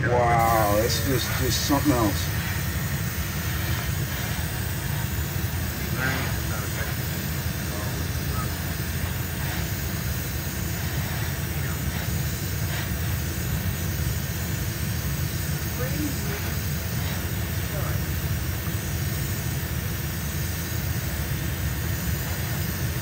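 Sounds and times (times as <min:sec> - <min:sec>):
extraction fan drone and hiss: 0:00.0 - 0:23.0.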